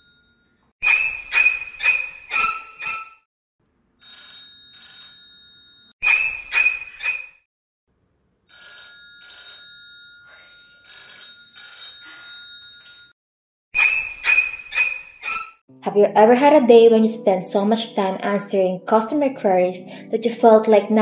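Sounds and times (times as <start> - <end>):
mobile phone ringtone: 4.0 - 5.9, 8.5 - 13.1.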